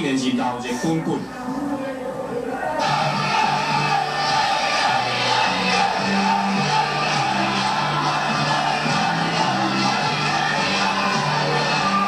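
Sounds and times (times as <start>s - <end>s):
large crowd noise: 0.0s - 12.0s
music with stepping bass line: 2.9s - 12.0s.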